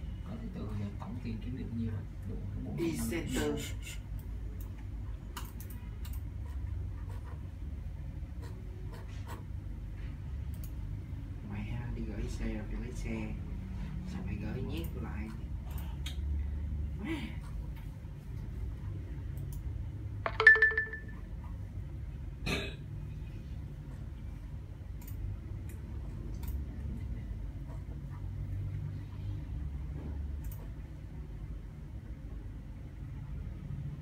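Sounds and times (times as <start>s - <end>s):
low background hum: 0.0s - 34.0s
phone notification chime: 20.3s - 21.2s.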